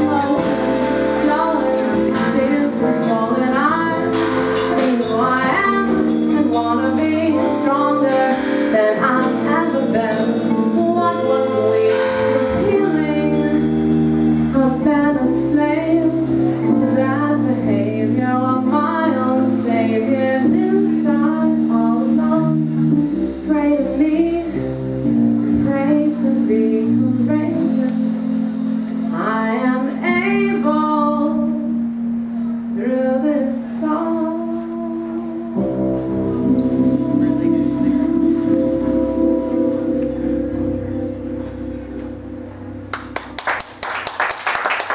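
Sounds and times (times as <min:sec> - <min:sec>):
woman singing: 0:00.0 - 0:31.9, 0:32.6 - 0:40.8
drums: 0:00.0 - 0:44.9
electric piano chords: 0:00.0 - 0:44.9.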